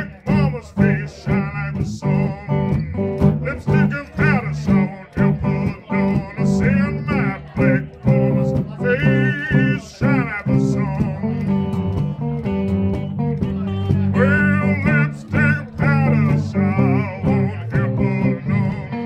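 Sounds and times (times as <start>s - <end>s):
lead guitar bent notes: 0.0s - 19.0s
low guitar riff: 0.0s - 19.0s.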